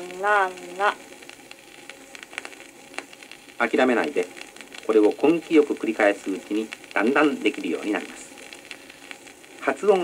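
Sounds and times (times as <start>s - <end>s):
record surface hiss and crackle: 0.0s - 10.0s.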